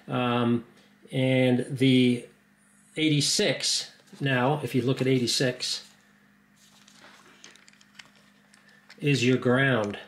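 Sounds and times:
low steady hum: 0.0s - 10.0s
handling noise: 6.6s - 10.0s.

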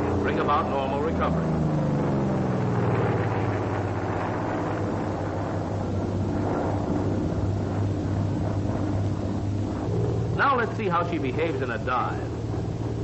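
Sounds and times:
propeller plane engine droning: 0.0s - 13.0s.

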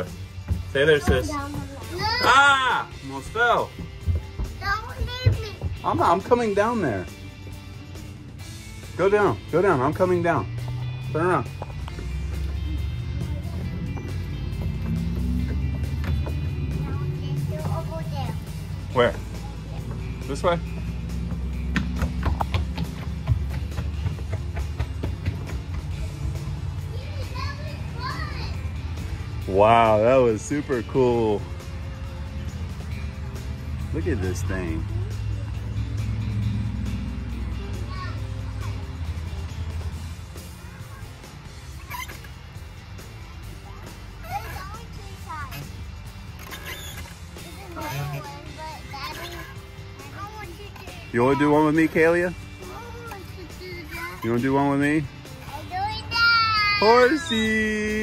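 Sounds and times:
music: 0.0s - 58.0s
footsteps on wooden deck: 0.3s - 2.4s, 3.5s - 6.0s, 11.5s - 27.6s
steady low drone: 10.4s - 41.7s
faint children's voices: 25.9s - 29.1s, 40.4s - 42.2s, 46.4s - 51.8s.

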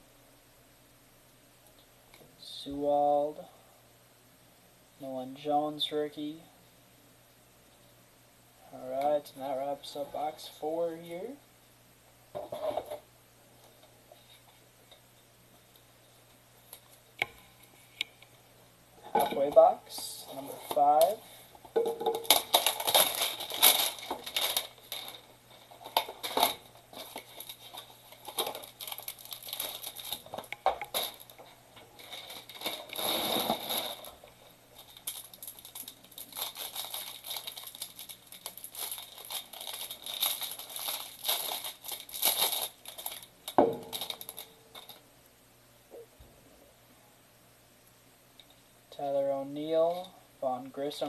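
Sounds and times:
plastic wrapping crinkling and tearing: 20.2s - 45.0s.

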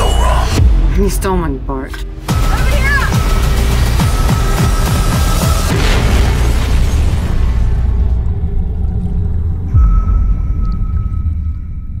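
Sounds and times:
deep rumbling drone: 3.4s - 12.0s
heavy low boom: 5.7s - 12.0s.

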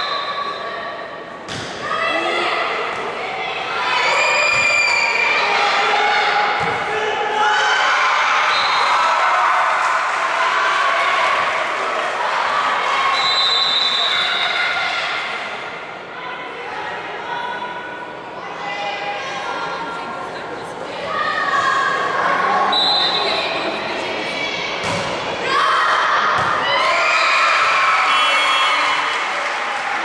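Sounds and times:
volleyball hits: 26.2s - 26.7s.

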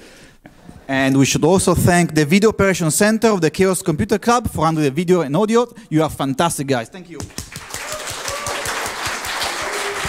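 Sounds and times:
roomful of people applauding: 7.2s - 10.0s.

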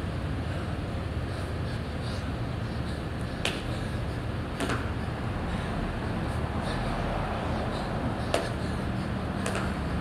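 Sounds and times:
steady low hum: 0.0s - 10.0s
body slapping concrete floor: 3.4s - 3.7s, 4.6s - 4.9s, 8.3s - 8.6s, 9.4s - 9.8s.

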